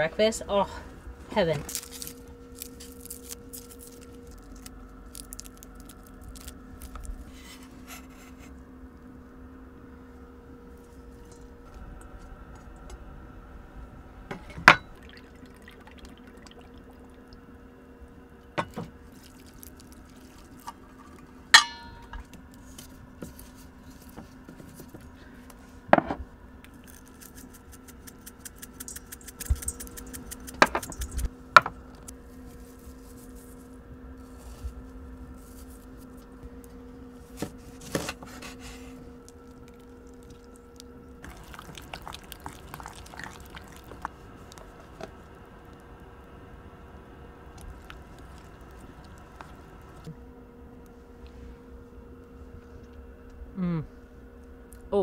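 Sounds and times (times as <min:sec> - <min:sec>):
steady low hum: 0:00.0 - 0:55.0
metal utensils clinking in bowl: 0:28.8 - 0:30.0.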